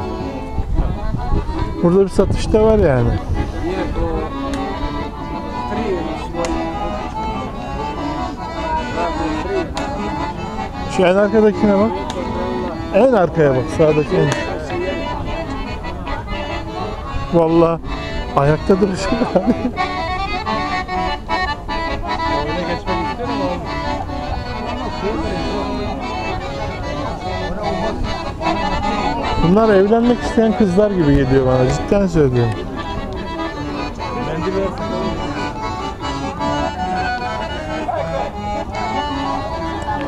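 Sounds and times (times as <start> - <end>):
crowd voices: 0.0 - 40.0
lively accordion music: 0.0 - 40.0.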